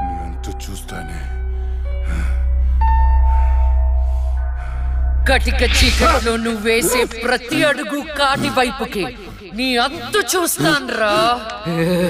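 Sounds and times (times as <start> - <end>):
tense drone film score: 0.0 - 12.0.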